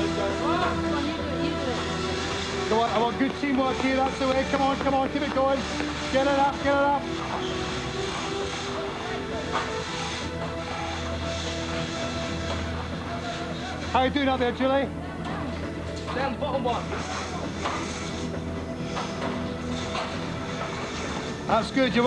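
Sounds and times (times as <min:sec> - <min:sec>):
sustained synth music: 0:00.0 - 0:22.0.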